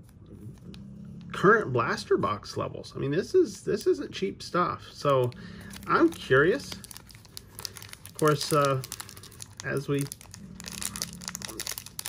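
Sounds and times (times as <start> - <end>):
foil wrapper crinkling: 5.0 - 12.0.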